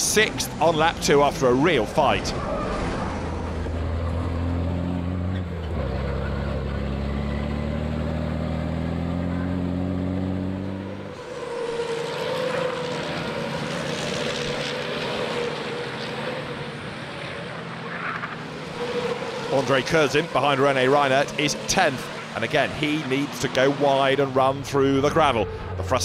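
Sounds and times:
racing trucks driving past: 0.0 - 26.0
truck diesel engine accelerating: 0.0 - 26.0.

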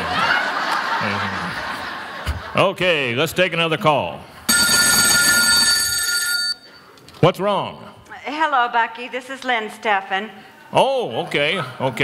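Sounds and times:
telephone ringing: 4.5 - 6.7.

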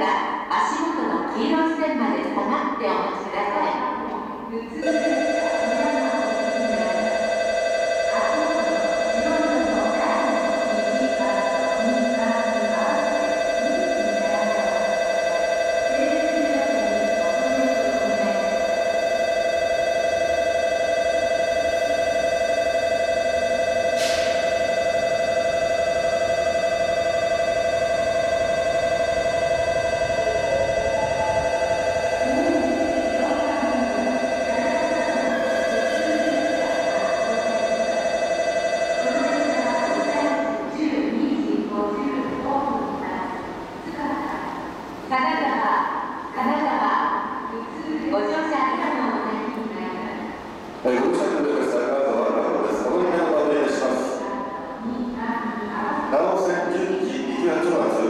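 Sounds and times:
electronic platform bell ringing: 4.3 - 48.4.

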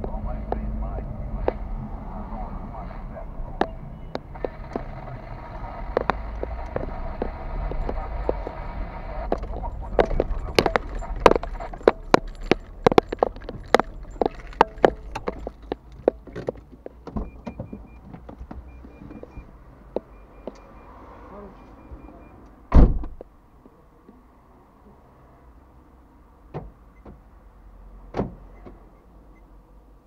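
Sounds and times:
car engine and road rumble: 0.0 - 30.0
faint high beeps: 3.5 - 4.9, 6.0 - 15.5, 17.2 - 22.4
sharp clicks and knocks: 3.6 - 20.7.

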